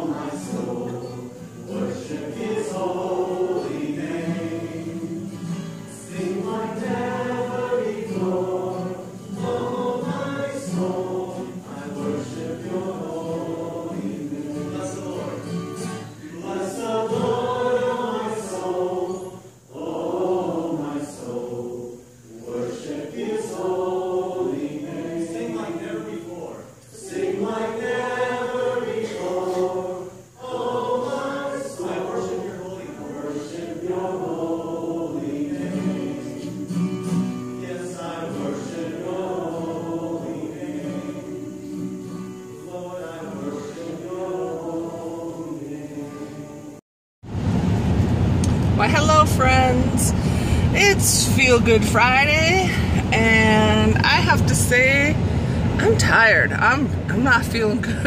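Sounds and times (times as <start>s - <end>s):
choir singing gospel song: 0.0s - 46.8s, 48.4s - 58.0s.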